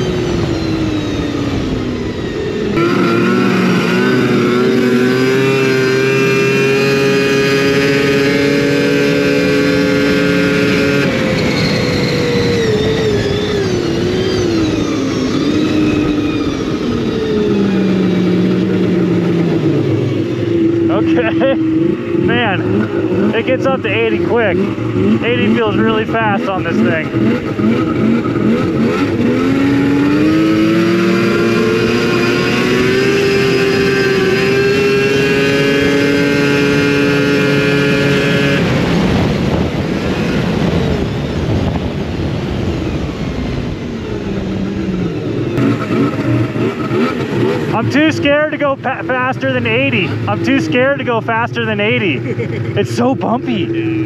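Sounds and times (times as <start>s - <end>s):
snowmobile engine winding down: 0.0s - 54.0s.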